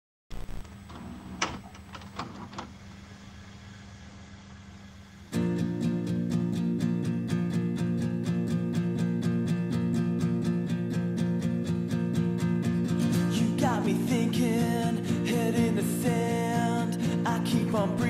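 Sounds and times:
acoustic guitars strumming: 0:05.3 - 0:18.0.

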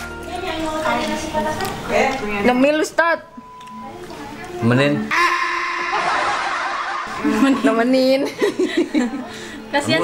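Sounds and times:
person laughing: 0:05.2 - 0:07.4.

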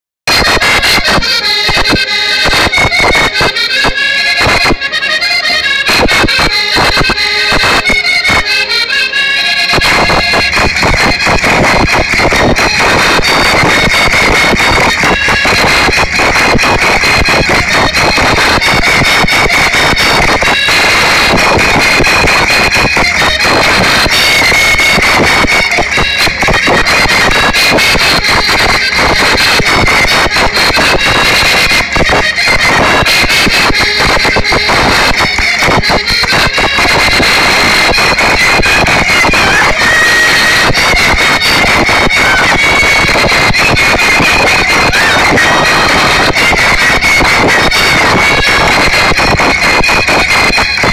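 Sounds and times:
accordion folk tune: 0:00.3 - 0:50.9
steady driving beat: 0:00.3 - 0:50.9.

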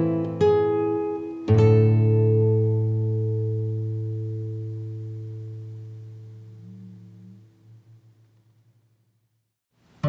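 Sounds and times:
acoustic guitar chord ringing: 0:00.0 - 0:08.9
soft low note: 0:02.0 - 0:09.4.

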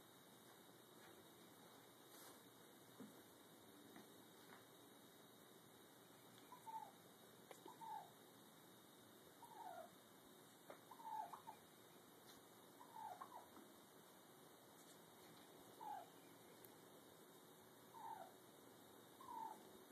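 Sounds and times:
turkey gobbler calling: 0:10.9 - 0:11.6, 0:12.8 - 0:13.5, 0:18.0 - 0:18.3.

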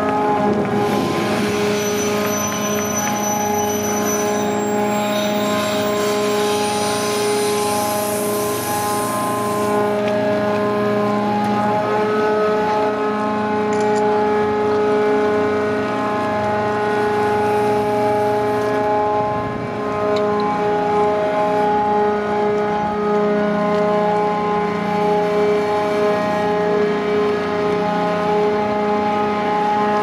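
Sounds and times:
fixed-pitch whine: 0:00.0 - 0:13.0
crane machinery drone: 0:00.0 - 0:30.0.

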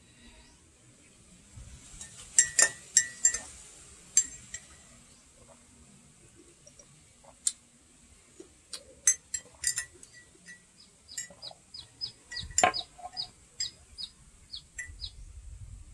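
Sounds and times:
bird chirping: 0:10.0 - 0:15.4.

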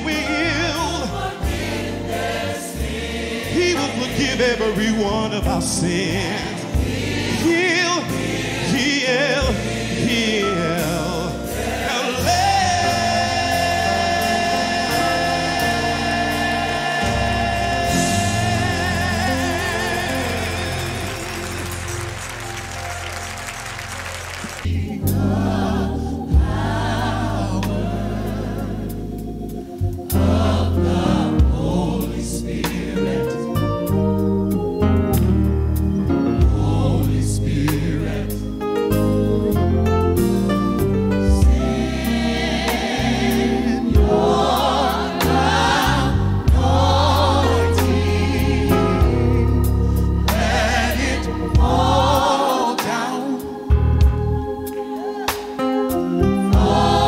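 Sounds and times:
gospel choir singing: 0:00.0 - 0:57.0
instrumental accompaniment: 0:00.0 - 0:57.0
low bass: 0:12.2 - 0:52.3, 0:53.7 - 0:54.6
heavy bass line: 0:43.0 - 0:52.3.

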